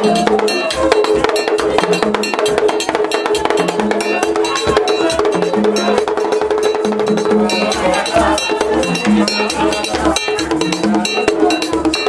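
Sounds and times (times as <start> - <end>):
fast drum and percussion music: 0.0 - 12.0.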